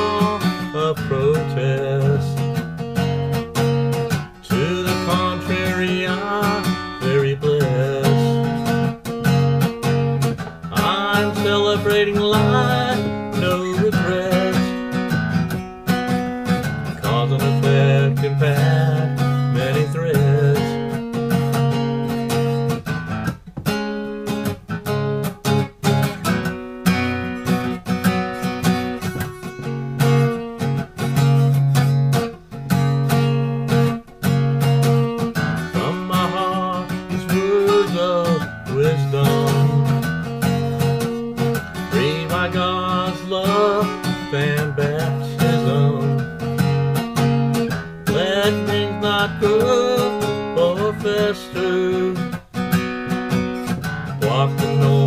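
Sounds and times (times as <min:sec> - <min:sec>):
man singing: 0:00.0 - 0:02.6, 0:04.4 - 0:08.9, 0:10.2 - 0:15.6, 0:16.4 - 0:22.4, 0:35.4 - 0:46.7, 0:48.0 - 0:52.4, 0:53.7 - 0:55.0
acoustic guitar strumming: 0:00.0 - 0:55.0.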